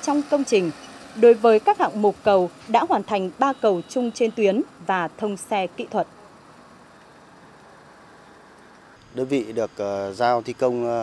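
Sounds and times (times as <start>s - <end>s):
faint diesel truck engine: 0.0s - 11.0s.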